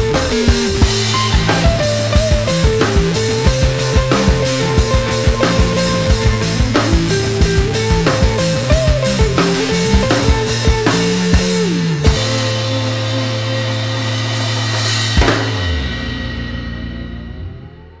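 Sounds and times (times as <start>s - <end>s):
rock band playing: 0.0s - 18.0s
cymbal crash: 12.1s - 18.0s.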